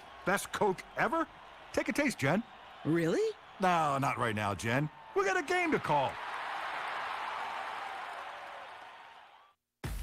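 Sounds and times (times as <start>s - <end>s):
crowd noise: 0.0s - 9.5s.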